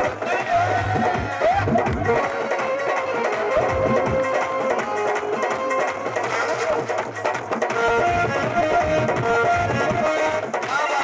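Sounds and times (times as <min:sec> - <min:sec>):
drums: 0:00.0 - 0:11.0
keyboard melody: 0:00.0 - 0:11.0.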